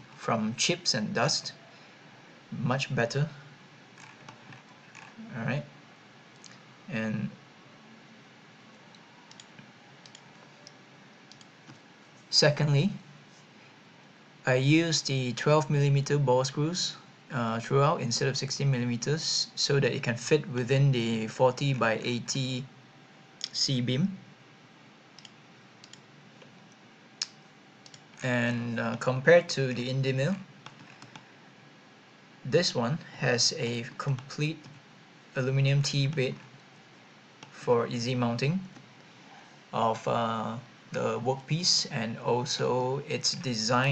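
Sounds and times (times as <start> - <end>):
low steady hiss: 0.0 - 43.9
computer mouse clicks: 8.9 - 11.8, 25.2 - 28.2, 30.6 - 31.2.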